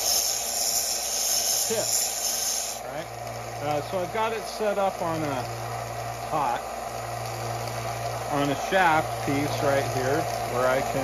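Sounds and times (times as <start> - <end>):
belt sander grinding metal: 0.0 - 11.0.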